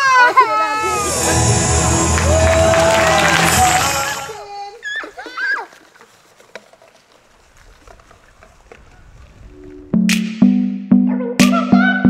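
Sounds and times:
music: 0.8 - 4.4, 9.6 - 12.0.

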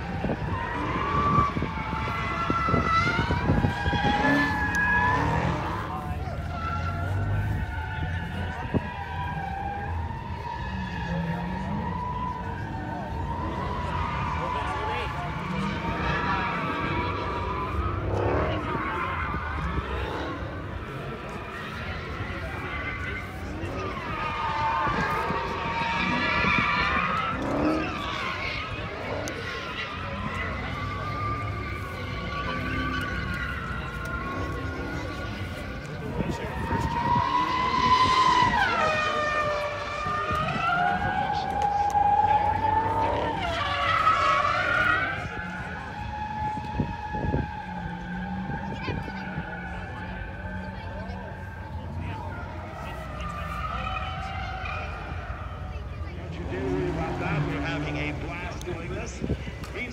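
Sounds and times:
crowd rumble: 0.0 - 59.9
distant racing car engines: 0.0 - 59.9.

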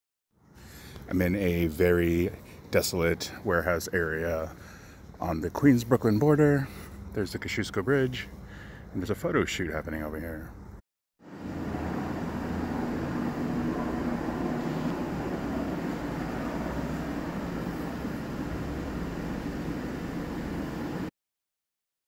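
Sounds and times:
blower fan humming: 11.3 - 21.1.

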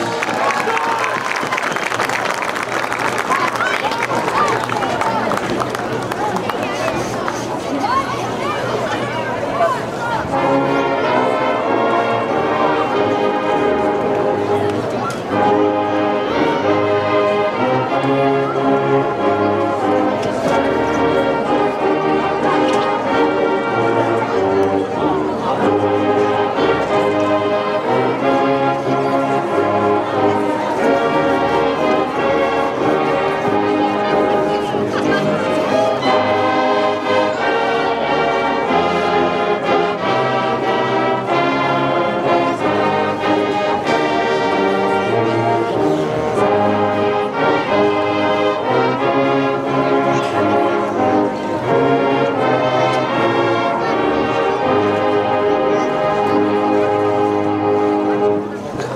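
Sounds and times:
marching band playing: 0.0 - 58.9.

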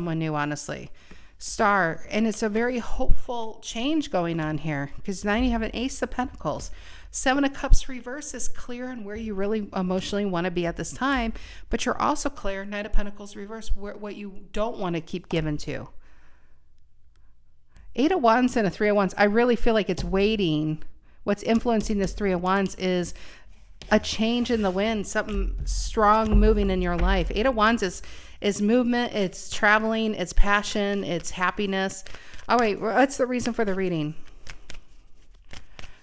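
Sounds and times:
low steady hum: 1.0 - 36.0
cards being shuffled: 29.8 - 36.0.

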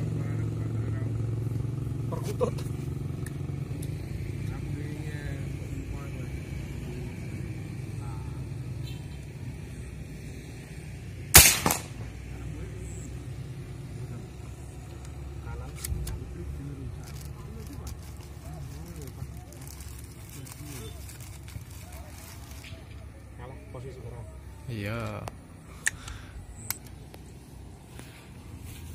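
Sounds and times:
air rifle shot: 11.3 - 12.1.

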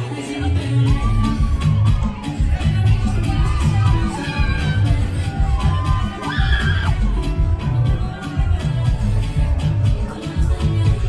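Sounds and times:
club dance music with heavy bass: 0.0 - 11.0.

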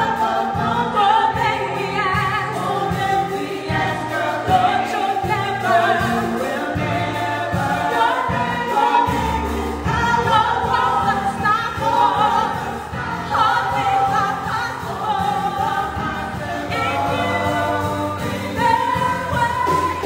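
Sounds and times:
band with low bass line: 0.0 - 20.0
group singing gospel in harmony: 0.0 - 20.0.

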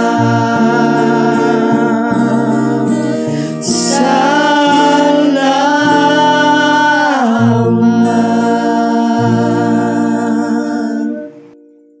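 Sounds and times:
vocal trio singing: 0.0 - 11.6
instrumental accompaniment: 0.0 - 12.0.

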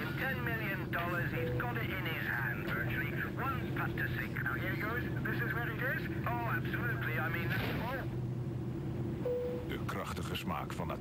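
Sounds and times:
airliner cabin drone: 0.0 - 11.0.

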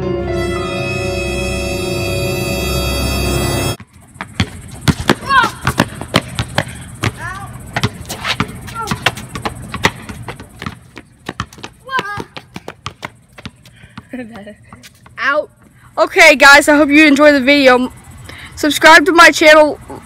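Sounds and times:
basketball bouncing on concrete: 3.8 - 15.7
boys shouting: 5.2 - 5.8, 7.2 - 7.6, 8.7 - 9.1, 11.8 - 12.5.

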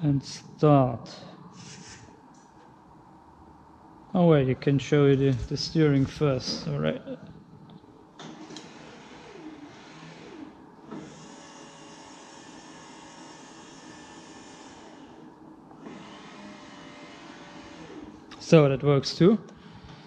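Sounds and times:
electric motor whining: 8.5 - 18.2.

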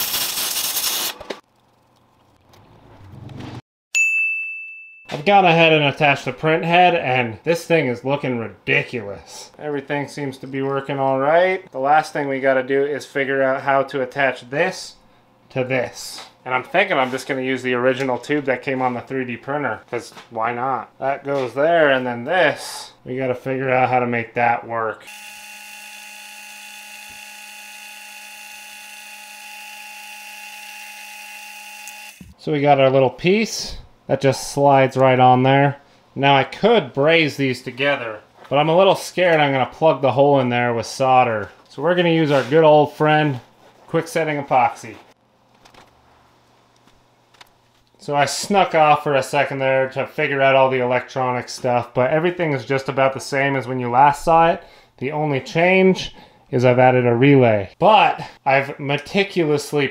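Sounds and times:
welding arc crackling: 0.0 - 1.8
sharp bell-like ding: 3.9 - 5.2.

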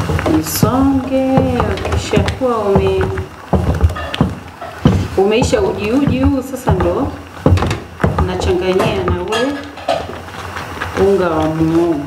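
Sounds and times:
spoon knocking metal pot: 0.0 - 10.3.

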